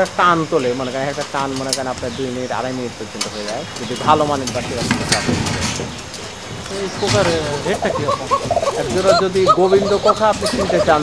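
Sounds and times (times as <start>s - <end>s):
pigeon cooing: 2.9s - 11.0s.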